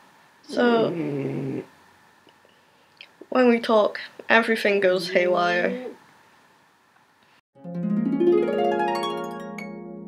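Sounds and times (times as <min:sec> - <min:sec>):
pet snoring: 0:00.6 - 0:01.7.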